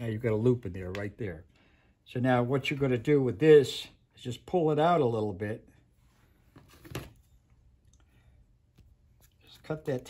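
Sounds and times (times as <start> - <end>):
handling sounds on wooden workbench: 6.4 - 7.3.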